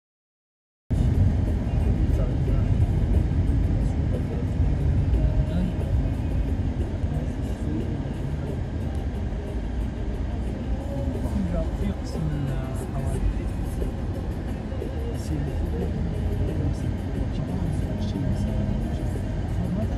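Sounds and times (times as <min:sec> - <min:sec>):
vehicle engine and road rumble: 0:00.9 - 0:19.9.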